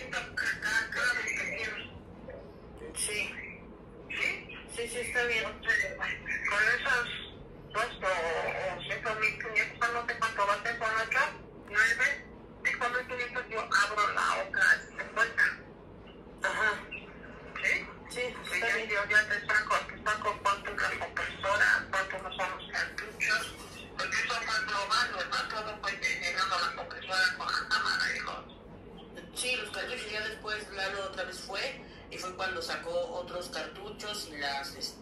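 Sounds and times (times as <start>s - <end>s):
person talking: 0.0s - 3.5s, 4.1s - 15.7s, 16.4s - 35.0s.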